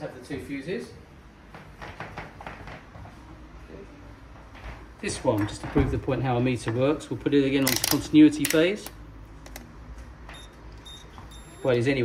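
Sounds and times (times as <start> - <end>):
high-pitched multimeter beeps: 10.3 - 11.8.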